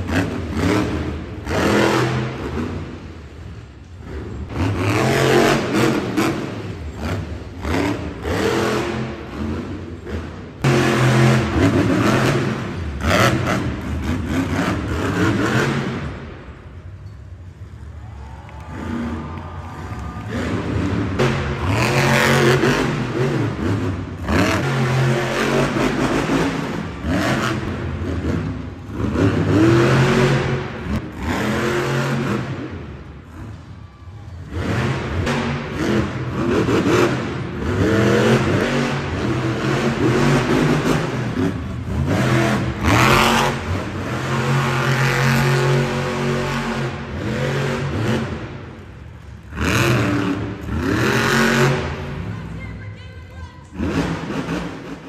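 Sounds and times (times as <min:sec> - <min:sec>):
truck engine revving hard: 0:00.0 - 0:16.4, 0:18.7 - 0:33.5, 0:34.4 - 0:52.3, 0:53.8 - 0:55.0.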